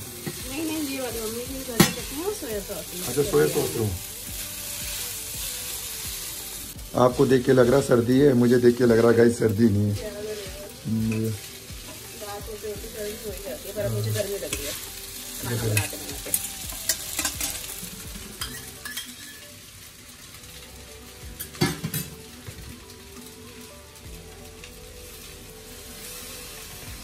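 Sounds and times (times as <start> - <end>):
noodles sizzling in wok: 0.0 - 27.0
metal utensil scraping pan: 0.1 - 6.0, 7.2 - 19.6.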